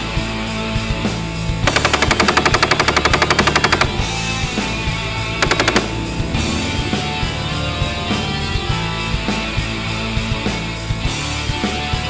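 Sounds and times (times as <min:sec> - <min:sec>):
heavy metal music: 0:00.0 - 0:12.0
machine-gun fire: 0:01.6 - 0:06.7.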